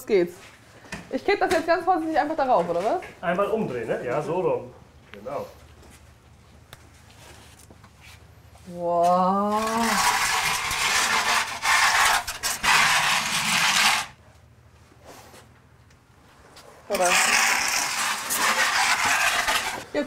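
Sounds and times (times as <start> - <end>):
wooden peel scraping stone: 9.5 - 14.2, 16.9 - 19.9.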